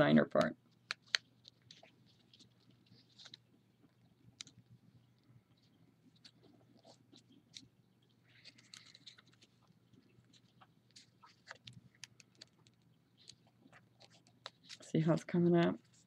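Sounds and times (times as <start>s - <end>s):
paper being folded: 0.7s - 3.5s, 6.1s - 16.0s.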